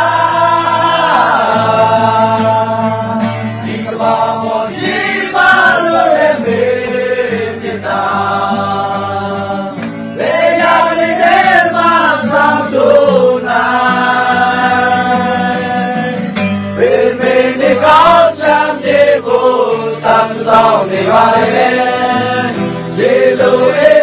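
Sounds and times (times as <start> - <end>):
men singing together: 0.0 - 24.0.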